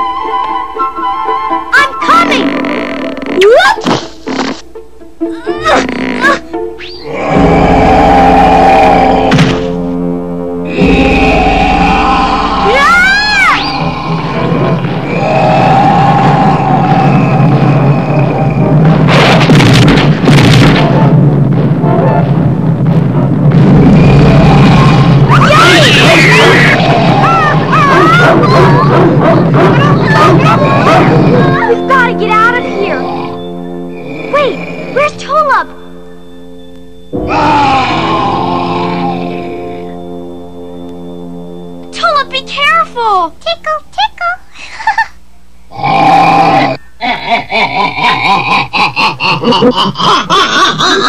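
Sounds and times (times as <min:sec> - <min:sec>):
loud cartoon music: 0:04.4 - 0:21.2, 0:23.5 - 0:36.0, 0:37.1 - 0:40.2
gliding cries: 0:05.3 - 0:19.1, 0:23.7 - 0:41.9
sharp thud: 0:09.3 - 0:09.8
cartoon sound effects: 0:25.3 - 0:33.4.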